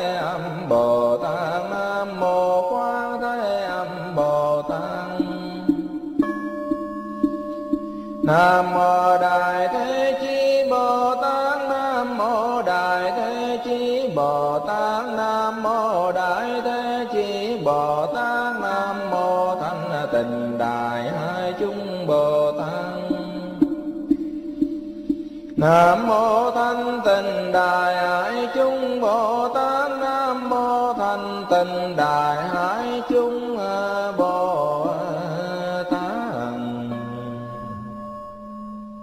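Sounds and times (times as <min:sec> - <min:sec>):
mantra chanted melodically: 0:00.0 - 0:05.9, 0:08.2 - 0:23.9, 0:25.5 - 0:38.1.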